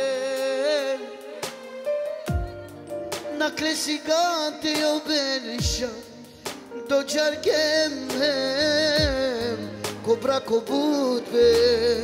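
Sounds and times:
band playing slow song: 0.0s - 12.0s
low drum thump: 2.3s - 2.6s, 9.0s - 9.4s.

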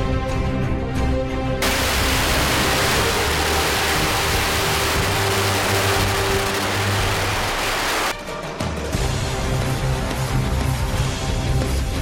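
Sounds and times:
firecrackers crackling: 1.6s - 8.2s.

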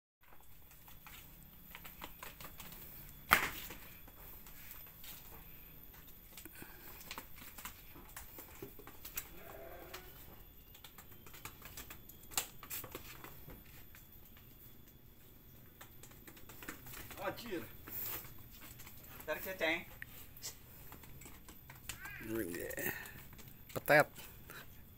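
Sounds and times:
sheep hooves clicking on stone: 0.2s - 24.9s.

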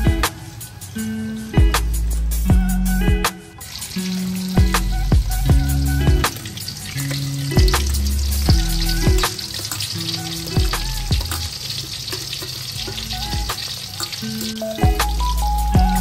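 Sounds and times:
background music with bass: 0.0s - 11.6s, 12.8s - 16.0s
peanuts sizzling in hot oil: 3.6s - 16.0s.

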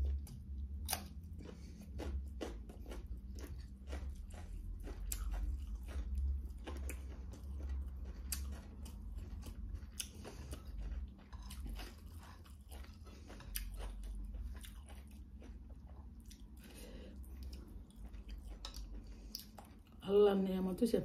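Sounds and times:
person chewing food: 0.0s - 20.0s.

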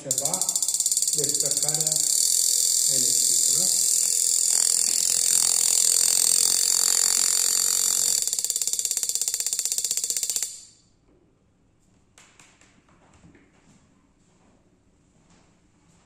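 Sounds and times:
high-voltage spark crackling: 0.0s - 8.2s.

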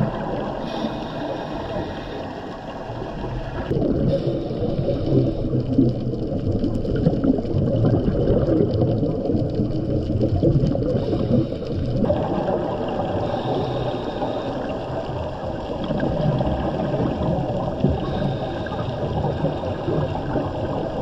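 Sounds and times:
underwater bubbles rumbling: 0.0s - 21.0s.

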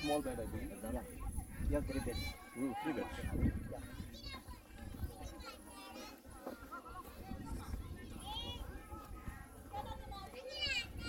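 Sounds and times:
people talking outdoors: 0.0s - 11.0s
wind on microphone: 0.3s - 2.4s, 3.0s - 5.5s, 6.9s - 11.0s.

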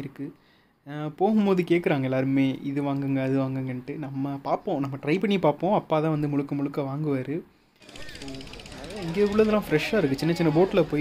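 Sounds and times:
faint voices: 7.8s - 11.0s
machine rattling: 7.8s - 11.0s
person speaking: 7.8s - 11.0s.

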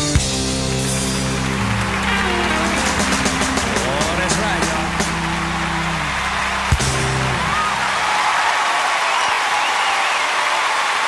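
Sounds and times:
country band holding a chord: 0.0s - 8.2s
crowd cheering: 0.4s - 11.0s.

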